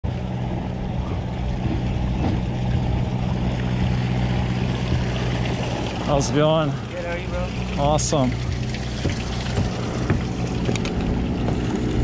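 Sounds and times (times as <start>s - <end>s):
boat engine idling: 0.0s - 12.0s.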